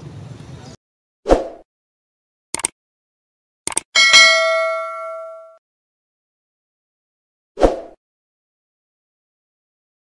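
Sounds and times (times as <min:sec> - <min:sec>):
bright bell ding: 0:04.0 - 0:05.6.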